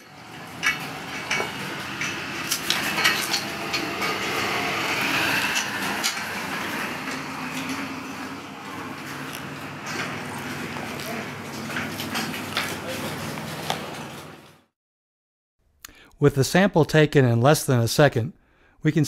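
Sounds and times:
cattle shifting in stanchions: 0:00.3 - 0:14.5
metal clinks and rattles: 0:00.4 - 0:04.7.

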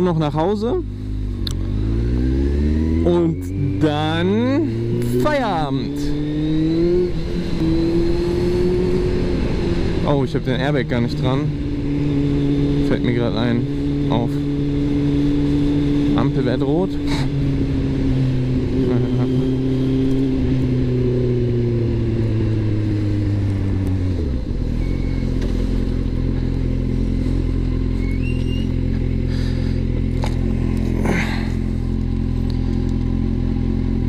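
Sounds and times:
motorcycle engine revs falling: 0:17.0 - 0:34.0.

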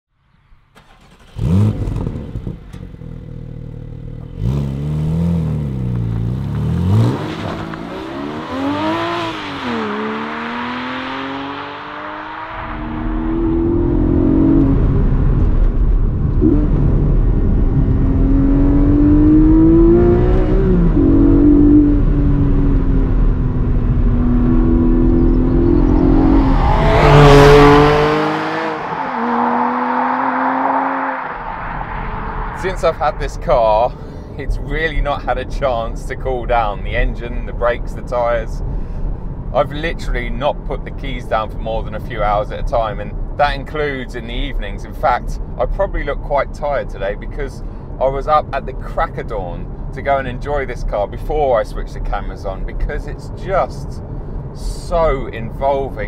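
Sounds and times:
car engine revving: 0:00.8 - 0:47.5
car accelerating through gears: 0:00.9 - 0:03.0, 0:04.2 - 0:15.5, 0:16.3 - 0:33.1.

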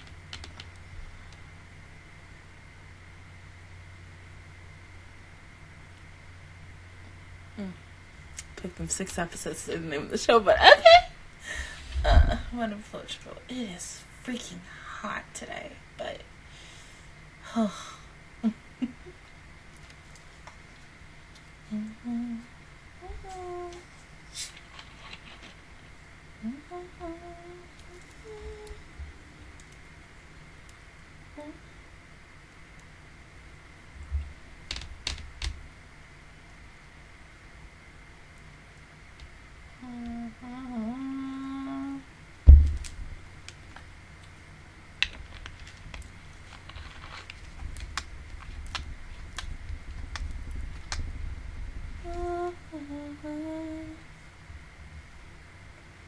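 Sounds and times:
woman humming softly: 0:07.6 - 0:07.9, 0:11.6 - 0:12.6, 0:21.7 - 0:23.9, 0:26.4 - 0:29.0, 0:31.3 - 0:31.7, 0:39.8 - 0:42.1, 0:52.0 - 0:54.1
sharp low thump: 0:42.4 - 0:43.1.

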